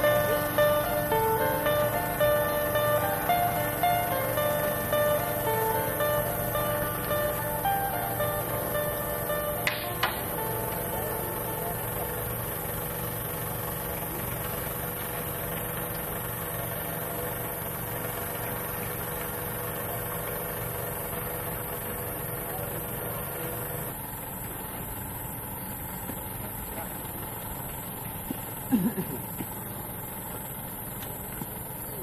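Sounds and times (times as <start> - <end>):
engine idling: 0.0 - 32.0.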